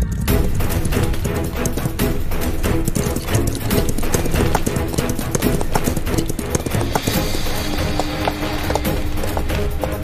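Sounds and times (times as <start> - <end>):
background music: 0.0 - 10.0
horse hooves galloping on dirt: 0.3 - 10.0.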